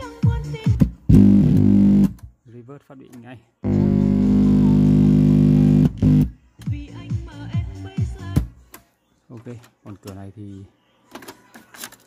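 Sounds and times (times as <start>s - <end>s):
bass and guitar music from cassette: 0.0s - 2.3s, 3.6s - 8.6s.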